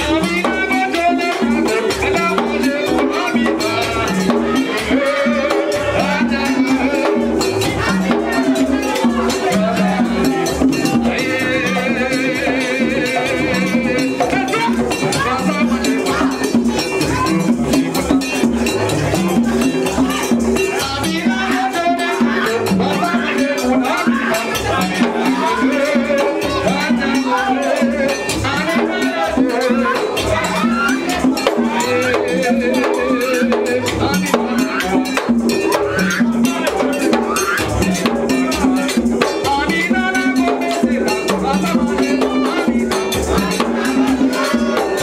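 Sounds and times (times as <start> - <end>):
hand drums fast rhythm: 0.0 - 45.0
struck metal bell beat: 0.0 - 45.0.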